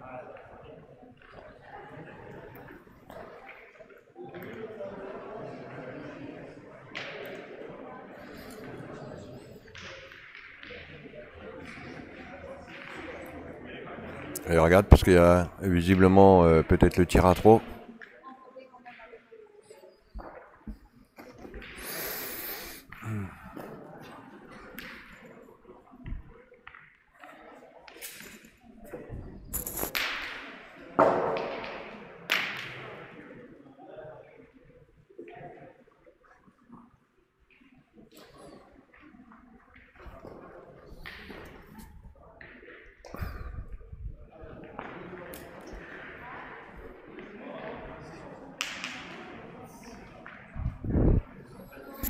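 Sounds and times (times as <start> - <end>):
low background talk: 0.0 - 52.0.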